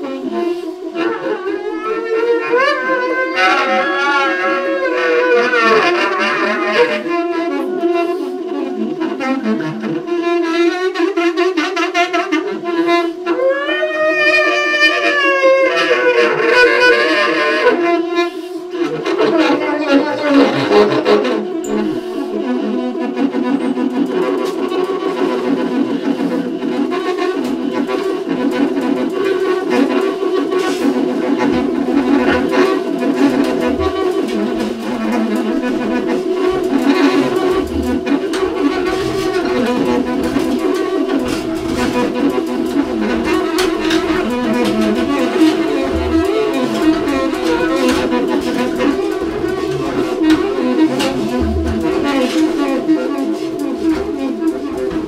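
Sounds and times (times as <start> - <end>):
saxophones holding long tones: 0.0 - 55.0
cymbal strokes: 19.9 - 26.5.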